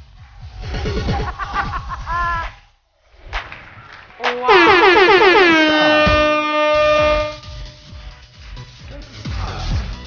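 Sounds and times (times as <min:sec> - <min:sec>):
short pitched sound: 0:04.2 - 0:07.4
loud wailing note: 0:04.2 - 0:07.6.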